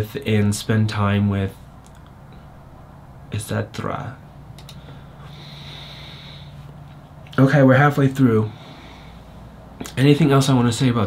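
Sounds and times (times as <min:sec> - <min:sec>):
low electrical hum: 0:00.0 - 0:11.0
person breathing out through nose: 0:04.8 - 0:06.7, 0:08.5 - 0:09.5.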